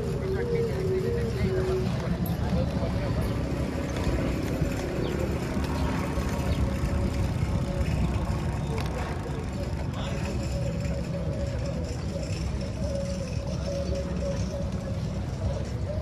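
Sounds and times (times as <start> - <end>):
wind and rolling rumble: 0.0 - 16.0.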